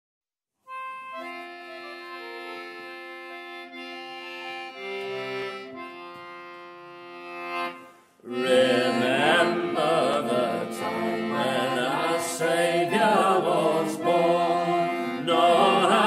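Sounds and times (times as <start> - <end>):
accordion chords: 0.7 - 16.0.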